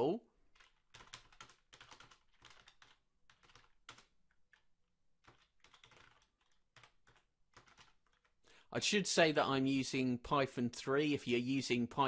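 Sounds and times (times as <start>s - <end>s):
typing on computer keyboard: 0.5s - 8.4s.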